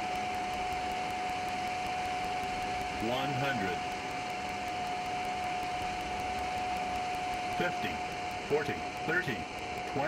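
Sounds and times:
aircraft engine whine: 0:00.0 - 0:10.0.

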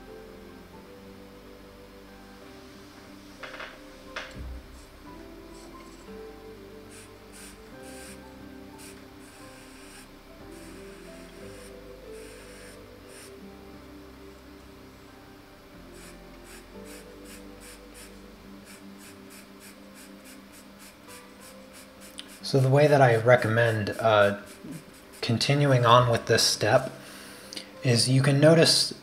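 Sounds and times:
quiet background music: 0:00.0 - 0:29.0
pencil scratching on paper: 0:06.9 - 0:08.2, 0:16.0 - 0:22.4, 0:24.2 - 0:25.4.

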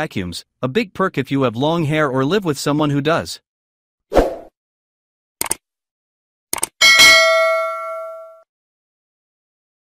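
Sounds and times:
quick clicks: 0:05.4 - 0:05.6, 0:06.5 - 0:06.8
bell-like chime ringing: 0:06.8 - 0:08.4.

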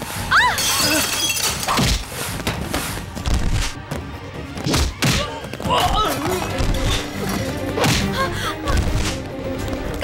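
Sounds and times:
background film score: 0:00.0 - 0:10.0
glass shattering: 0:00.5 - 0:02.0.

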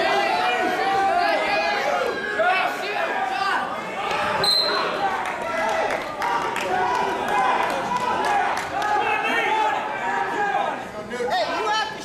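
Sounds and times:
voices talking in echoing gym: 0:00.0 - 0:12.0.

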